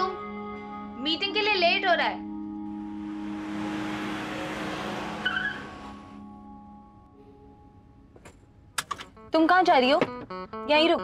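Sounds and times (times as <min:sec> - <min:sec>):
low music drone: 0:02.2 - 0:07.9
car engine: 0:02.5 - 0:06.7
tyres rushing on road: 0:02.6 - 0:06.2.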